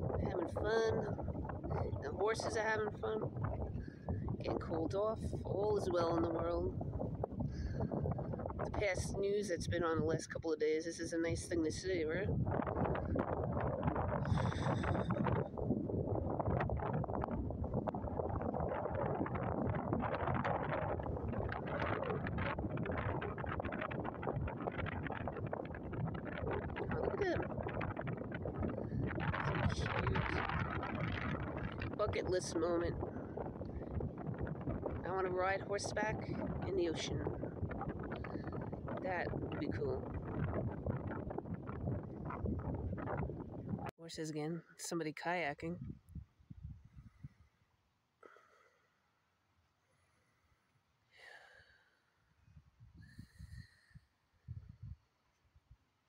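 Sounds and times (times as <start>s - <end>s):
wind buffeting microphone: 0.0s - 47.6s, 52.3s - 55.8s.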